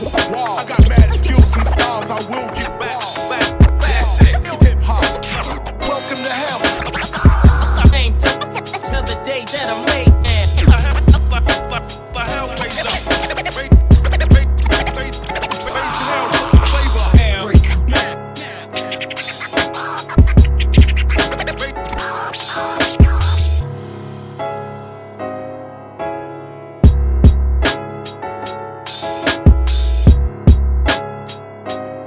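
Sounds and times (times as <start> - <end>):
hip hop instrumental beat: 0.0 - 23.6, 26.8 - 32.0
looped piano sample: 0.0 - 32.0
kick drum with deep bass: 0.8 - 1.7, 3.6 - 4.9, 7.3 - 8.2, 10.1 - 11.4, 13.7 - 14.6, 16.6 - 18.0, 26.8 - 27.6, 29.5 - 30.8
deep bass: 0.8 - 1.9, 3.5 - 5.9, 6.9 - 8.3, 8.9 - 18.1, 20.2 - 22.0, 23.0 - 23.7, 26.8 - 27.7, 29.5 - 30.9.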